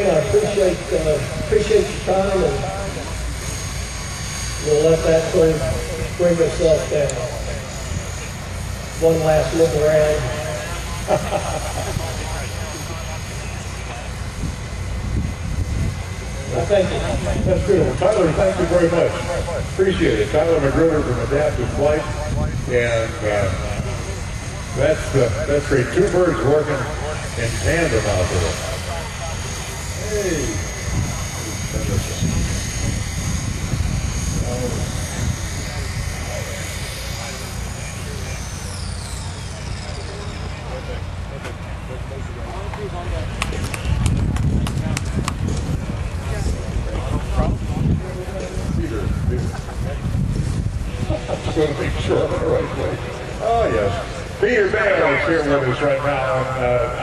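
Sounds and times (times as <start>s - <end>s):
helicopter rotor hum: 0.0s - 57.0s
person laughing: 11.0s - 12.3s.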